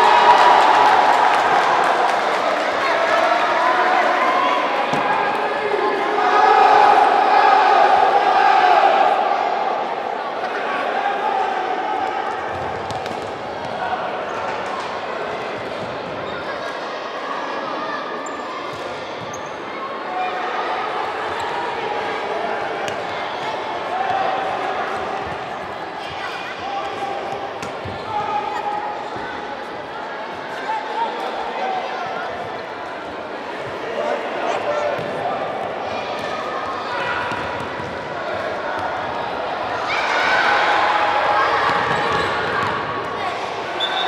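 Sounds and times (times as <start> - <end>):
children and spectators shouting: 0.0 - 12.5, 33.9 - 44.0.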